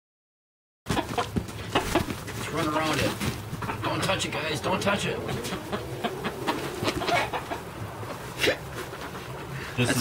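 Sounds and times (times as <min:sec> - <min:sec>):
hens clucking: 0:00.9 - 0:10.0.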